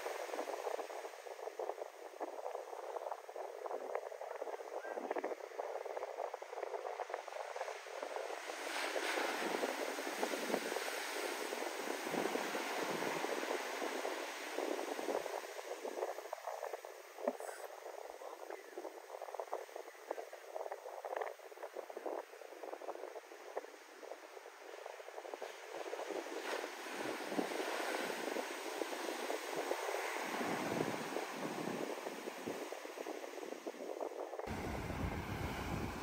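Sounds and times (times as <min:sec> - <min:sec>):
waves breaking on shore: 0:00.0 - 0:36.0
wind rumble on microphone: 0:00.0 - 0:36.0.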